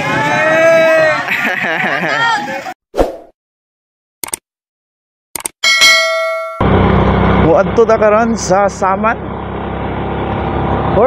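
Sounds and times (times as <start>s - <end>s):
quick mouse-like clicks: 4.2s - 4.4s, 5.4s - 5.6s
bright bell ding: 5.6s - 6.6s
motorcycle engine and road noise: 6.4s - 11.0s.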